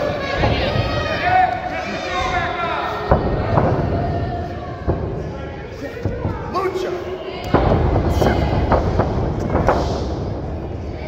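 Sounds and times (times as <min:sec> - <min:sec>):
crowd voices: 0:00.0 - 0:11.0
wrestlers smacking and thudding: 0:00.0 - 0:11.0.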